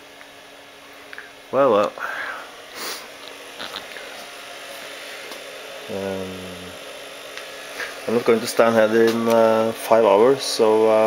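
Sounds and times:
faint steady hum: 0.0s - 11.0s
person sniffing: 2.0s - 4.1s.

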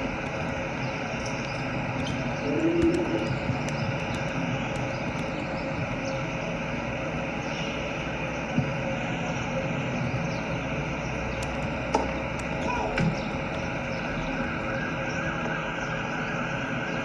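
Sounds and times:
low outdoor rumble: 0.0s - 17.0s.

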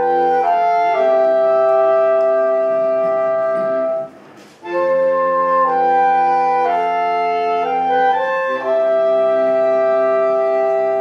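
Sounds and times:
folk band holding a chord: 0.0s - 11.0s.

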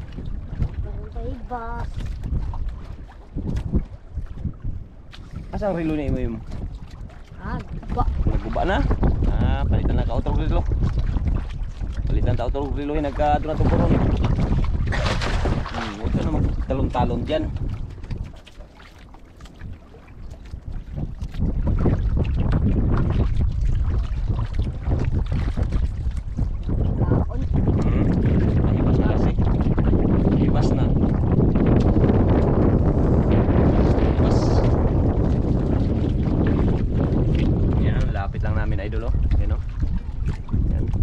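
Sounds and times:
wind buffeting microphone: 0.0s - 41.0s
boy's voice: 0.8s - 1.9s, 7.4s - 8.2s.

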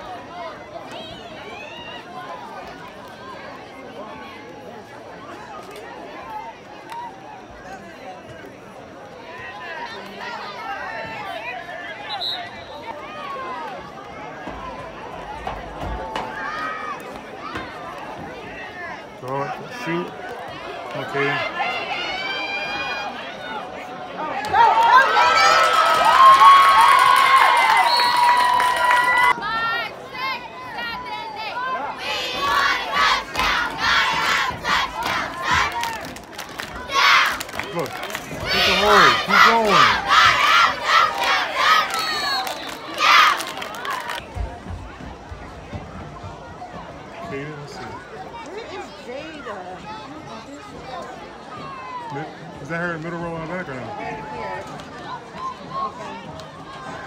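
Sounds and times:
spectators cheering and yelling: 9.3s - 50.2s
high-pitched shouting voices: 38.4s - 42.2s.

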